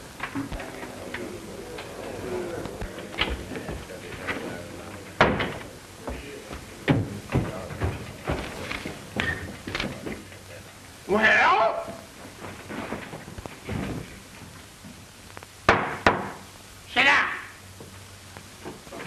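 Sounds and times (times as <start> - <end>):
low murmured voices: 0.0 - 11.2
film soundtrack hiss: 0.0 - 19.0
knocks and thumps of people moving: 5.2 - 10.3, 12.3 - 14.6.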